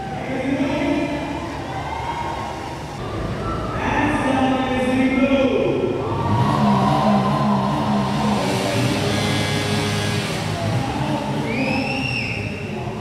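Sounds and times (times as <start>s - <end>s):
high rising and falling tone: 5.9s - 12.9s
motorcycle engines running: 6.0s - 13.0s.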